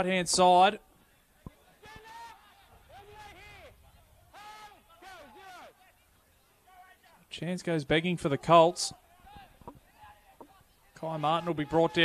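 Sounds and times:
distant shouting voices: 1.7s - 7.2s, 8.9s - 12.0s.

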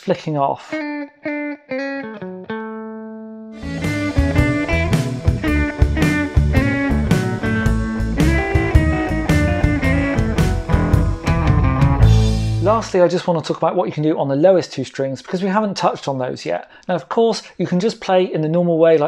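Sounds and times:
blues backing track: 0.7s - 13.0s
electric guitar playing blues: 0.7s - 13.0s.

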